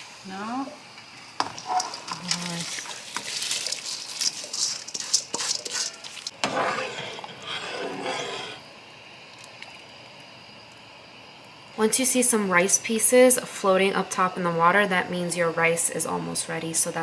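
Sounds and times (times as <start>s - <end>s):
rice scraped from metal bowl: 1.6s - 8.6s.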